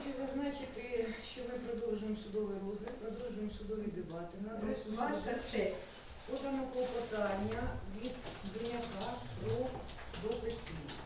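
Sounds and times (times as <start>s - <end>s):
person speaking indistinctly: 0.6s - 11.0s.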